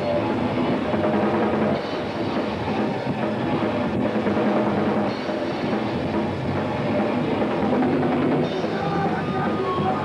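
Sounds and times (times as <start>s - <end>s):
metal band playing loud: 0.0s - 10.0s.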